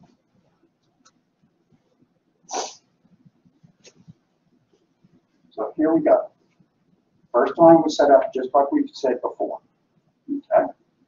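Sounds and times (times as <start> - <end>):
person sneezing: 2.5 - 2.8.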